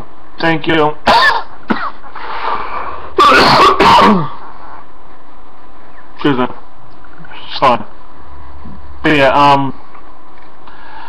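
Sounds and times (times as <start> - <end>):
man coughing: 1.0 - 2.1, 3.2 - 4.4
rough breathing: 2.1 - 3.2, 10.6 - 11.0.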